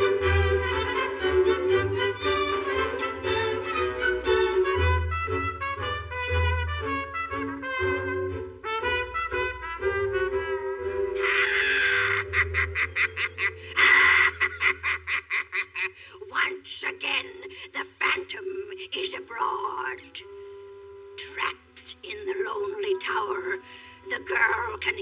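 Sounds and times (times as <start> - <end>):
orchestral cartoon music with brass: 0.0 - 14.8, 19.7 - 25.0.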